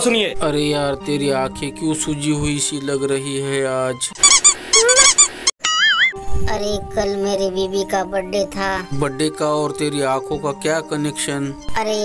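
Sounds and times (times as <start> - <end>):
short high squeaky chirps: 4.2 - 6.2
warbling whistle: 4.2 - 6.2.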